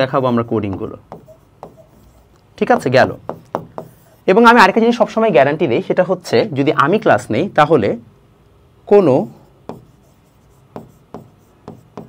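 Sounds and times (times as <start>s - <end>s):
pen writing on a board: 0.5s - 4.2s, 9.6s - 12.0s.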